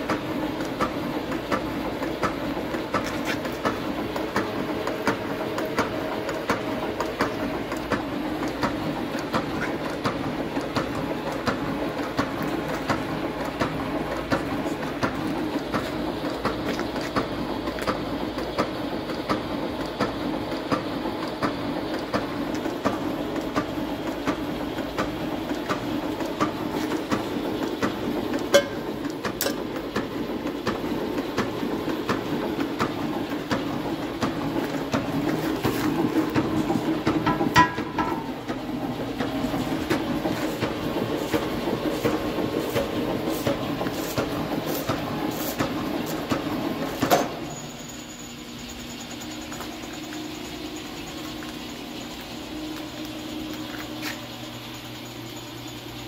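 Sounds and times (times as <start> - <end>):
gear shaper running: 0.0 - 56.0
loud machine knock: 36.2 - 41.2.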